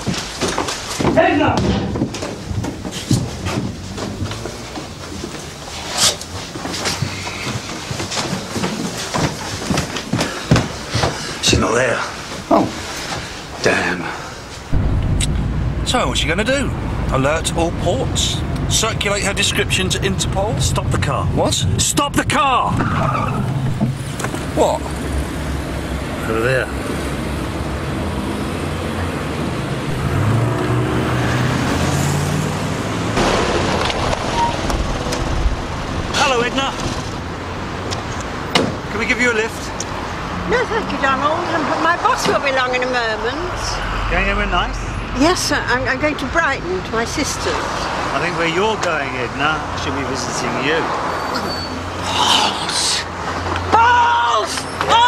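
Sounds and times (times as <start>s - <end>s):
hurried footsteps and knocks: 0.0s - 13.3s
street traffic: 0.0s - 55.0s
sharp bang: 14.7s - 18.4s
low hum: 14.7s - 18.9s, 43.0s - 46.9s.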